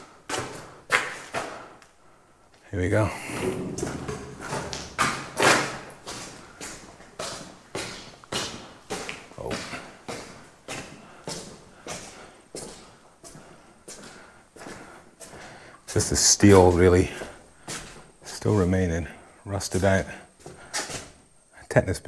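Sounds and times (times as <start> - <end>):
footsteps on gritty concrete: 2.5 - 18.6.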